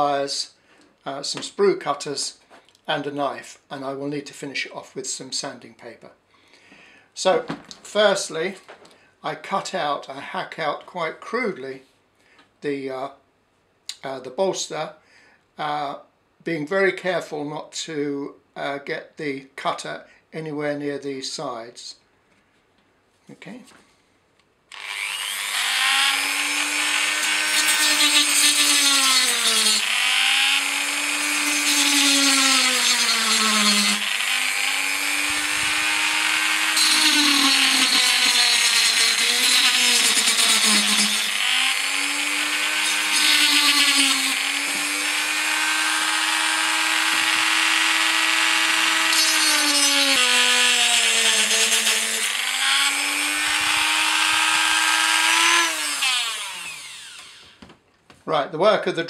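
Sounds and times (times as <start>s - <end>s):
rotary tool motor whine: 24.7s - 28.7s, 50.6s - 57.6s.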